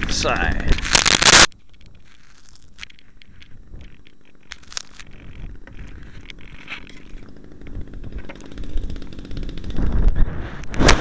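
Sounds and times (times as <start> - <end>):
wind buffeting microphone: 3.0 - 11.0.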